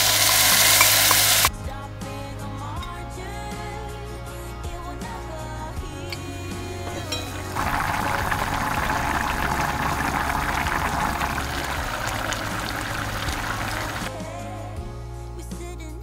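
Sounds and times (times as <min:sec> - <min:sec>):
liquid bubbling in a pot: 0:07.4 - 0:14.1.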